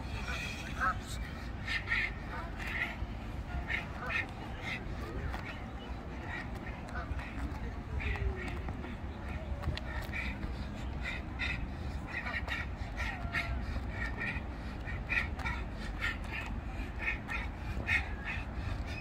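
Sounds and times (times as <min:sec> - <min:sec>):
footsteps tapping on pavement: 0:03.9 - 0:19.0.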